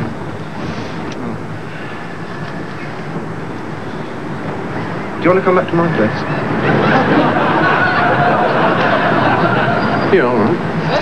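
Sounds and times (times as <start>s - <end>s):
low street rumble and hiss: 0.0s - 11.0s.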